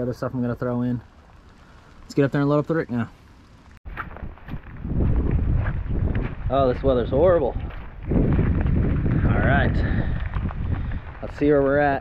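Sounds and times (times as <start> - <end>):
footsteps on wet ground: 3.8 - 12.0
wind buffeting microphone: 3.9 - 12.0.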